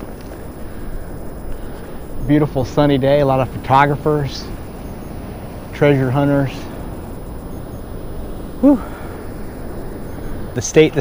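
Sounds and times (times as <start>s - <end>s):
surf rushing: 0.0s - 11.0s
wind: 0.0s - 11.0s
man exhaling whew: 8.6s - 9.2s.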